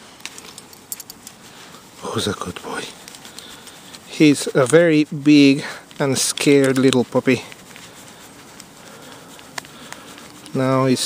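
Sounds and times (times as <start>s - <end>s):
dog collar clinking: 0.4s - 1.4s.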